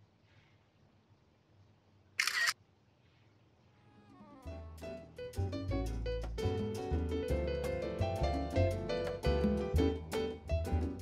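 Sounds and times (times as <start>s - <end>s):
camera shutter click: 2.2s - 2.6s.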